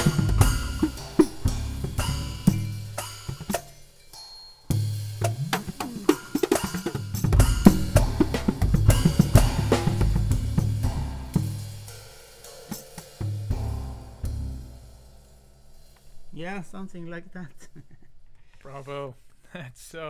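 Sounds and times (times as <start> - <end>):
cymbal strikes: 0.0 - 17.2
tuned drums playing a melody: 0.0 - 18.3.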